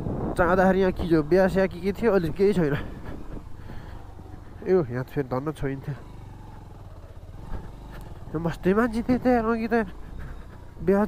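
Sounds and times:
motorcycle engine running: 0.0 - 11.0
tyres on gravel: 0.8 - 11.0.

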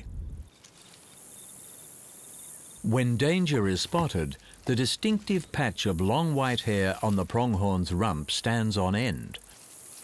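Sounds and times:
crickets chirping: 0.2 - 10.0.

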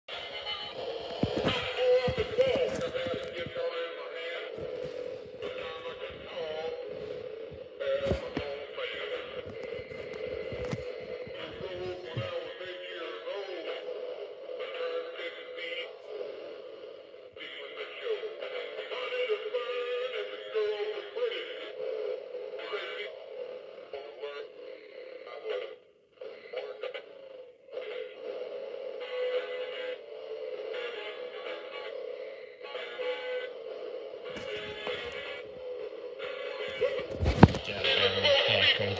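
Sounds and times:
song through small speaker: 0.1 - 38.9.

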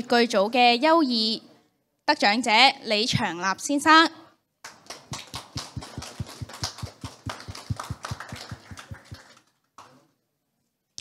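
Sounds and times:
small audience applauding: 4.6 - 10.1.

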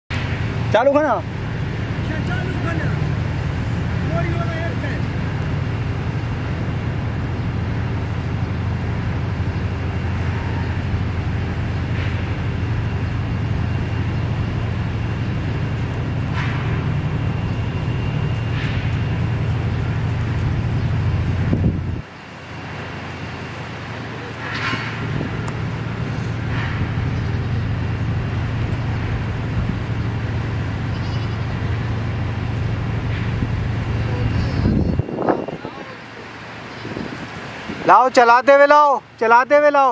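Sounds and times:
distant voices: 0.1 - 39.9.

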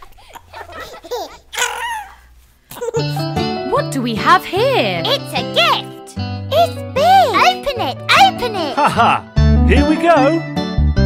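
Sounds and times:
small children giggling: 0.0 - 3.4.

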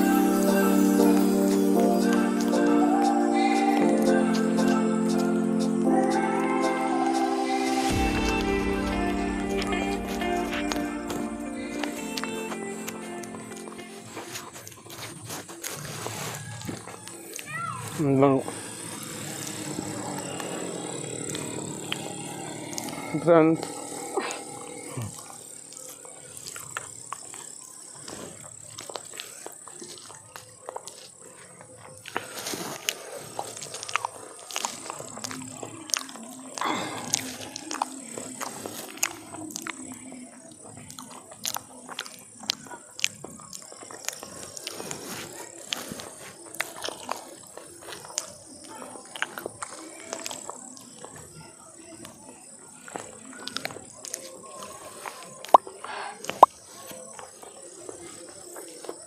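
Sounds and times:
eating sounds: 0.0 - 59.0
wet chewing: 8.0 - 51.4, 52.0 - 59.0
mouth clicks: 18.4 - 27.5, 55.3 - 57.3.

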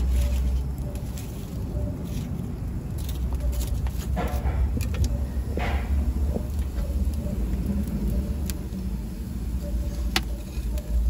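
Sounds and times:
fire crackle: 0.0 - 11.0
wood fire rumbling: 0.0 - 11.0.

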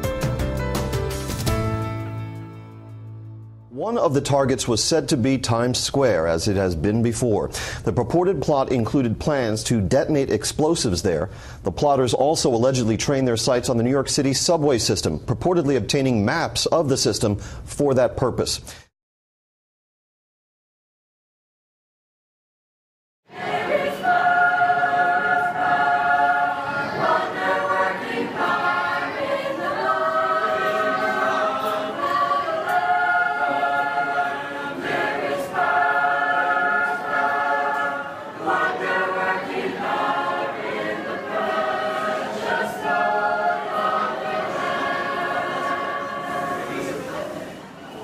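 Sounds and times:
choir singing a hymn: 23.3 - 48.0.

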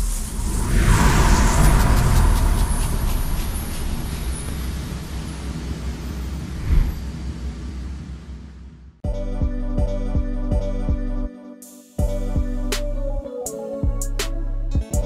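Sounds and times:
deep rumble with fiery whoosh: 0.0 - 7.3.

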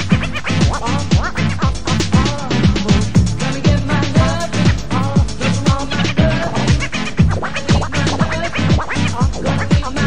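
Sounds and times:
dance music dj mix: 0.0 - 10.0
turntable scratching: 0.0 - 10.0
deep kick drums: 0.1 - 10.0.

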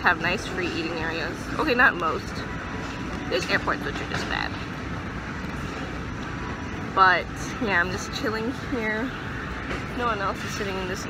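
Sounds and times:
airport terminal rumble: 0.0 - 11.0.

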